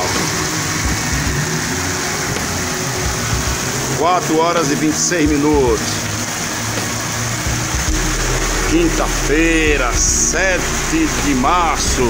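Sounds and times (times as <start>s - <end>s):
car engines running: 0.0s - 12.0s
heavy rain hissing: 0.0s - 12.0s
tyres on wet road: 0.0s - 12.0s.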